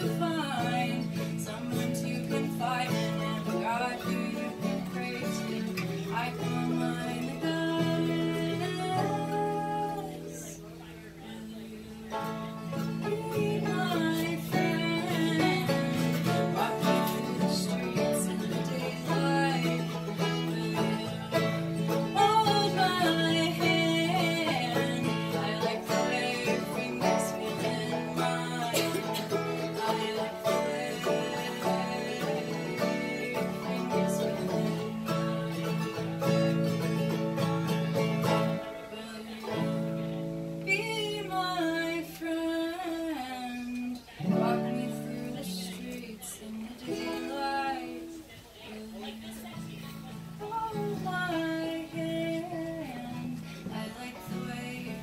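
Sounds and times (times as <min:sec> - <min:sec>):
banjo and guitars playing bluegrass: 0:00.0 - 0:55.0.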